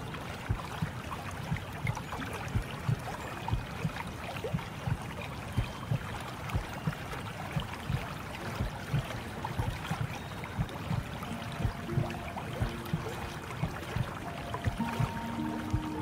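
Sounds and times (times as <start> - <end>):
gentle music: 0.0 - 16.0
water lapping and gurgling: 0.0 - 16.0.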